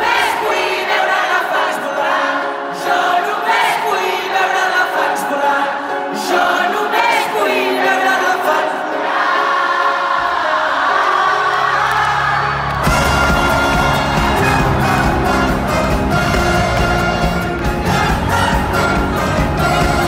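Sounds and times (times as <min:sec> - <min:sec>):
crowd singing along: 0:00.0 - 0:20.0
lead singer singing: 0:00.0 - 0:20.0
light guitar accompaniment: 0:11.8 - 0:20.0.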